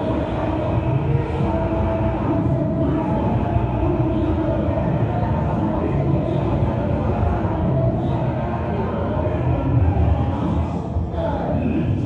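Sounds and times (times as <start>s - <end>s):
distorted rumble through pa: 0.0s - 12.0s.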